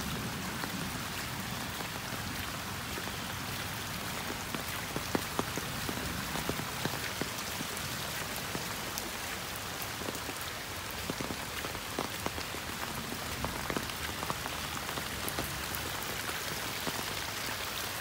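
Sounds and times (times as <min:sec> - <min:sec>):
raindrops ticking: 0:00.0 - 0:18.0.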